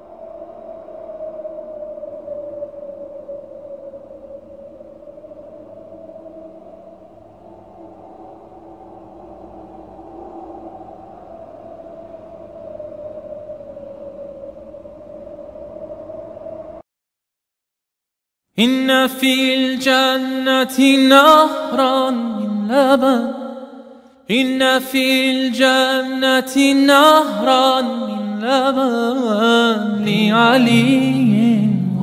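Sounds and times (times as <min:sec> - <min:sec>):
sustained wavering music drone: 0:30.0 - 0:32.0.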